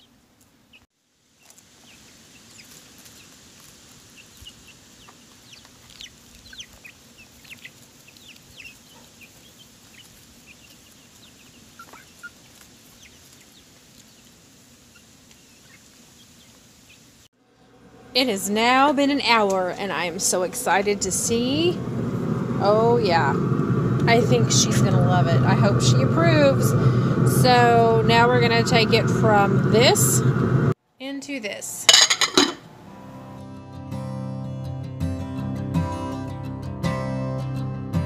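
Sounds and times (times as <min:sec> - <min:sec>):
young chickens chirping: 0:01.4 - 0:17.1
faint low hum: 0:17.4 - 0:30.8.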